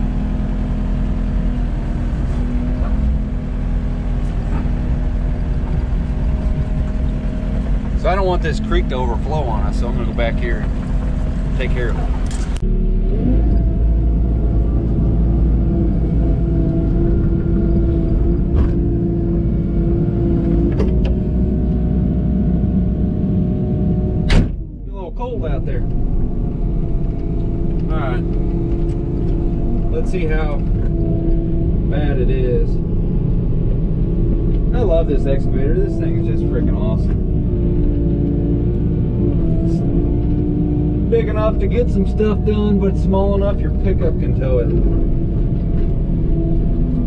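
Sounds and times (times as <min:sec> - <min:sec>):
excavator diesel engine running: 0:00.0 - 0:21.8.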